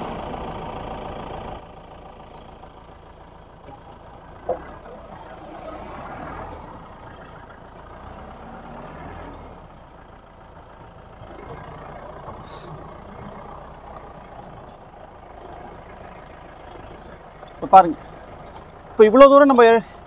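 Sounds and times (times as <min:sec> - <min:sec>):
jeep engine idling: 0:00.0 - 0:20.0.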